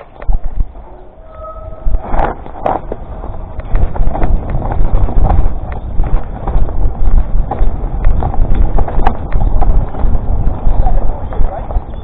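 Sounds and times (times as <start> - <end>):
wind rumble on microphone: 0.0 - 12.0
bike rattling and knocking: 2.0 - 12.0.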